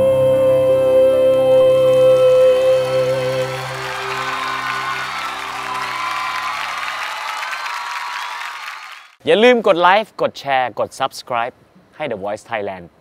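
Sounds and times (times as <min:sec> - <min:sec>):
audience applause and cheers: 0:02.1 - 0:09.2.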